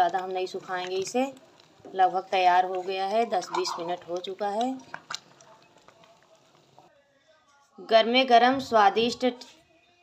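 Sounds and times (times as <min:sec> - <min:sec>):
woman's voice: 0:00.0 - 0:04.9, 0:07.8 - 0:09.5.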